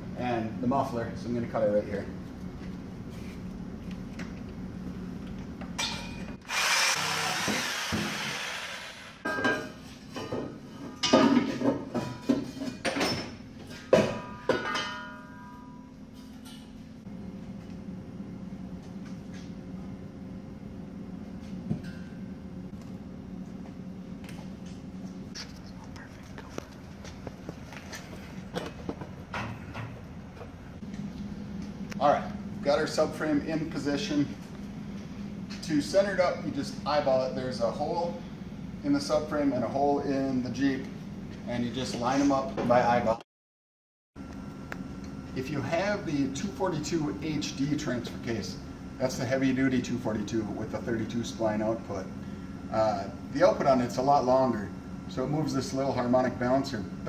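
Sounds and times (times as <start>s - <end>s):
power tool cutting steel pipe: 6.5s - 9.2s
low steady hum: 9.2s - 43.2s, 44.2s - 57.0s.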